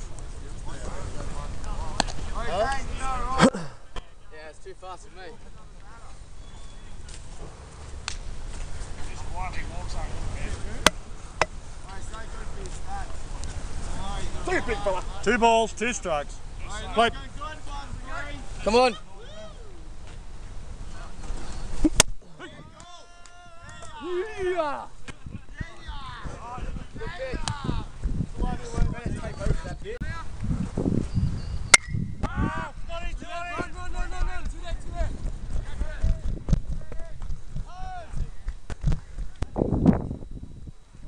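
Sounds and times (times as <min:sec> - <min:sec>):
voices shouting: 0:13.9 - 0:20.0, 0:22.3 - 0:25.0
players shouting: 0:22.3 - 0:25.0.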